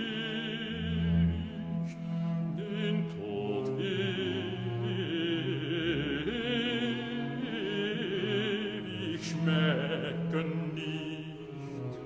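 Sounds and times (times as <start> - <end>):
baroque strings and continuo: 0.0 - 12.0.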